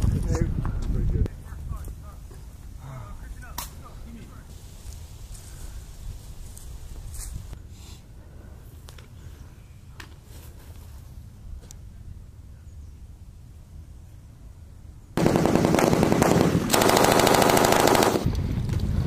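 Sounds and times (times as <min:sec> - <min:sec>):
sharp cracks: 0:15.2 - 0:18.9.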